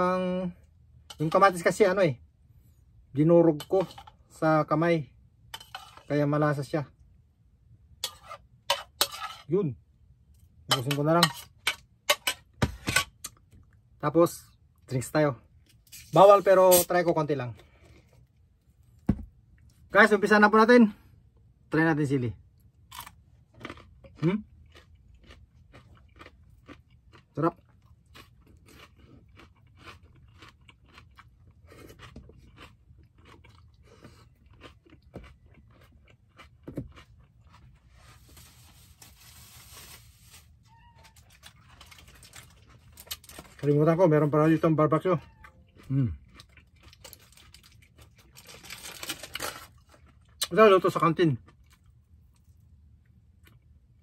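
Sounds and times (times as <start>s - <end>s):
chewing and crunching: 22.6s - 38.4s, 41.0s - 54.0s.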